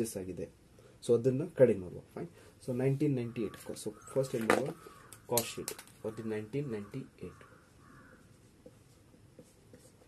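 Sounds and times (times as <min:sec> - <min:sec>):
marker strokes on whiteboard: 0:07.8 - 0:10.0.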